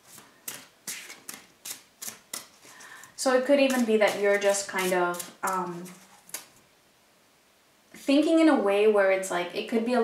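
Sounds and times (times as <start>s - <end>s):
cards shuffled by hand: 0.0s - 6.6s.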